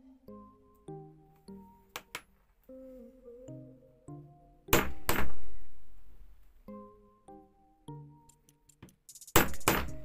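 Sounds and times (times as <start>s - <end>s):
soft piano background music: 0.0s - 10.0s.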